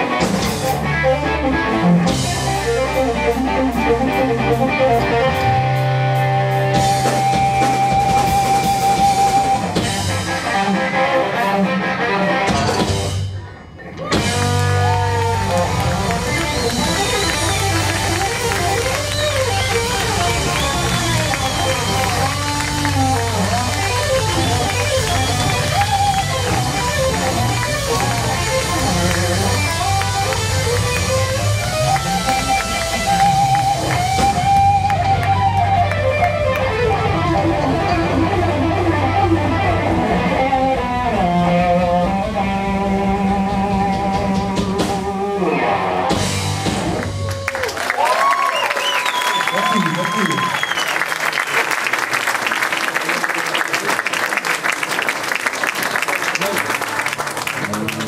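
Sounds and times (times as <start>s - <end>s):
electric guitar lead lines: 0.0s - 47.4s, 56.3s - 58.0s
bass guitar: 0.0s - 48.3s, 56.0s - 58.0s
drums: 0.0s - 58.0s.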